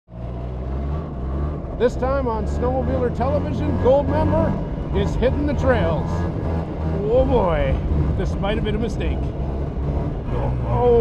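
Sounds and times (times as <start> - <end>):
snowmobile engine running: 0.2 - 11.0.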